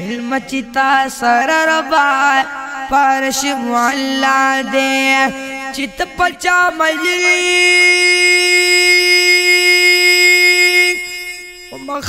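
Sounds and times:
young man singing a long note: 0.0s - 12.0s.

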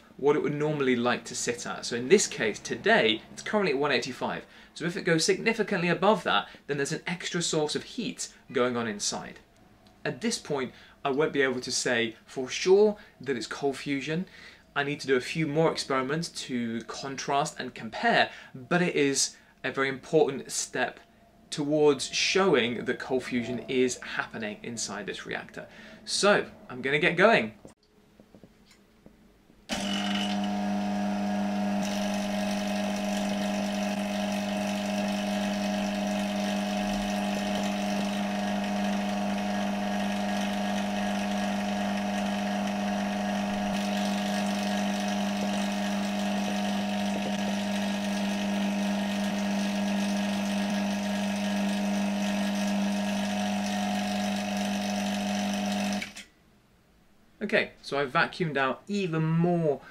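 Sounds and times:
vacuum pump humming: 29.7s - 56.2s.

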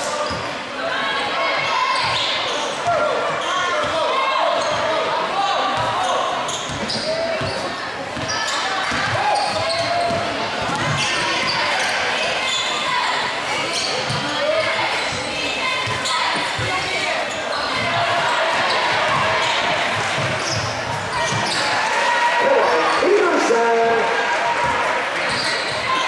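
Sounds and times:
crowd talking and calling out: 0.0s - 26.0s.

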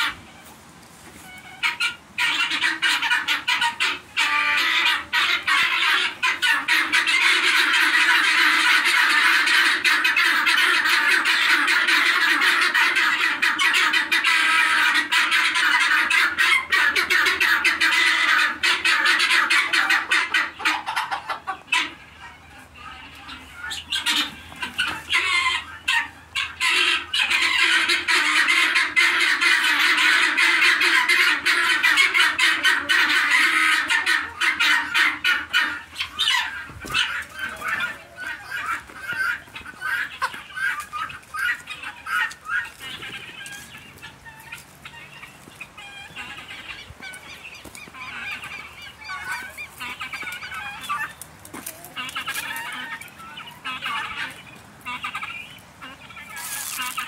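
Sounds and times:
guineafowl flock calling: 0.0s - 57.0s.

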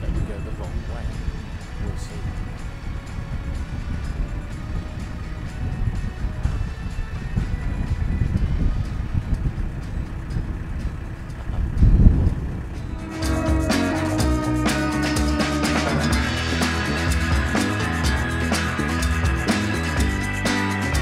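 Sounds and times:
wind buffeting microphone: 0.0s - 15.5s
soft background music: 0.0s - 16.6s.

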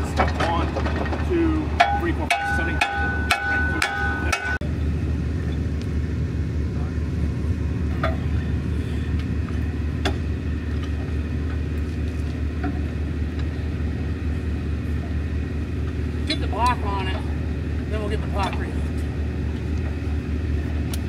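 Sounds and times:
diesel truck engine running: 0.0s - 21.0s
sledgehammer striking steel: 1.8s - 4.6s.

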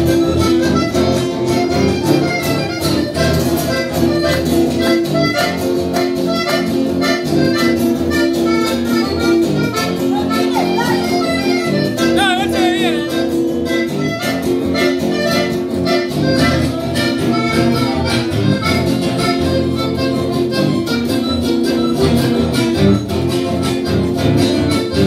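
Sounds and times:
button accordion melody: 0.0s - 25.0s
strummed acoustic guitars: 0.0s - 25.0s.

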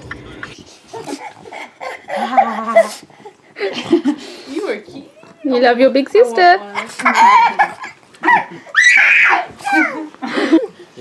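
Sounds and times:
pug vocalizing: 0.0s - 3.4s, 4.9s - 5.6s, 6.6s - 10.1s.

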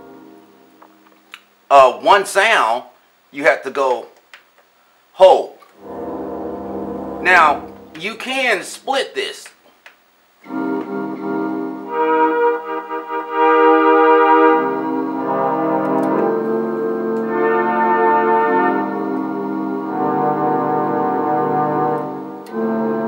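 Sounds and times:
synthesizer playing held chords: 0.0s - 1.2s, 5.8s - 8.6s, 10.4s - 23.0s.

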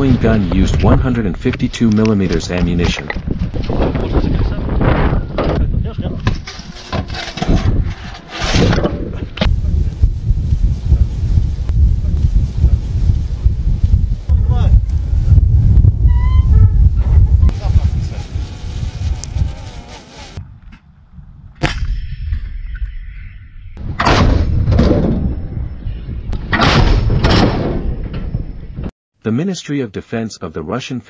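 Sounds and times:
wind buffeting microphone: 2.4s - 6.4s, 8.7s - 23.2s.

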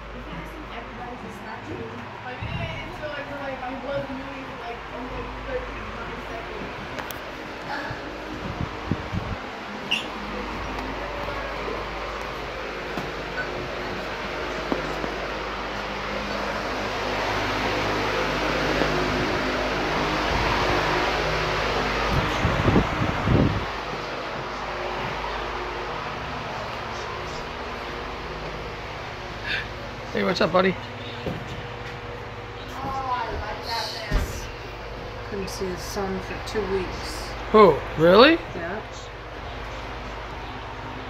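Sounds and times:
ventilation fan hum: 0.0s - 41.0s.

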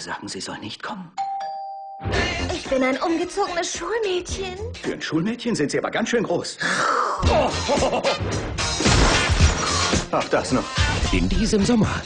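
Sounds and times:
trailer music: 2.0s - 2.8s, 7.2s - 12.0s
crash of objects smashed: 8.7s - 9.6s.

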